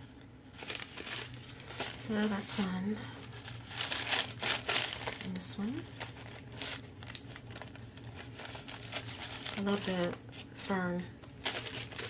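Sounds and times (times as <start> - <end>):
paper rustling: 0.6 - 12.0.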